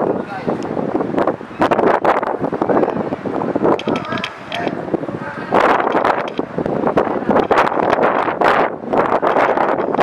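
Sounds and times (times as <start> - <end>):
winch cranking and rattling: 3.7 - 4.8.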